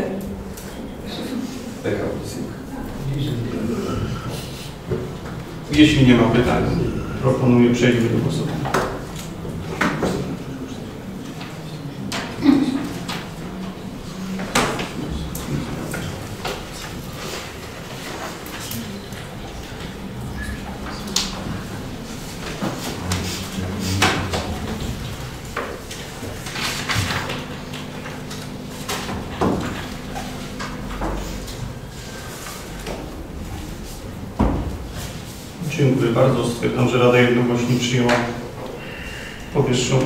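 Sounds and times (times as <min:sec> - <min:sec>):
faint murmured voices: 0:00.0 - 0:40.0.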